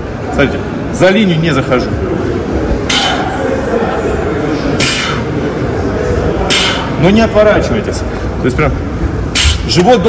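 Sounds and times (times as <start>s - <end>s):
indistinct voices: 2.0s - 7.2s.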